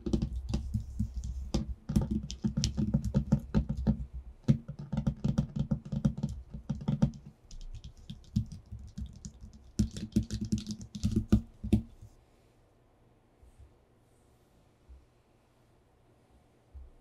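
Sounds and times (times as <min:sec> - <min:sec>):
fingertips tapping on paper: 0:00.0 - 0:12.2.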